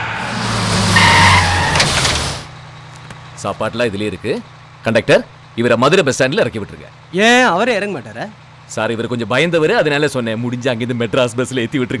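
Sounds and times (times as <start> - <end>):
tyres squealing: 0.0 - 2.6
bus engine running: 0.0 - 12.0.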